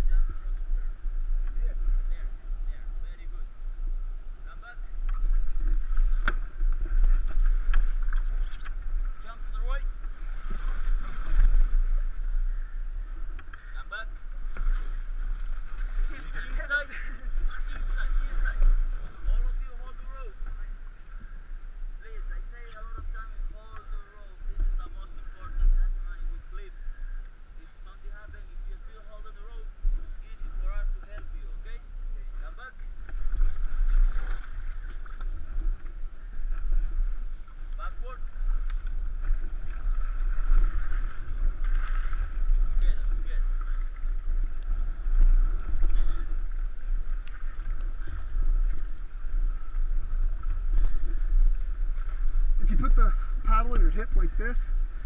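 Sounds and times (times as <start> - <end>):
river water splashing: 0.0 - 55.0
wind rumbling on microphone: 0.0 - 55.0
paddles knocking and splashing: 4.9 - 12.2, 13.1 - 21.4, 32.8 - 54.4.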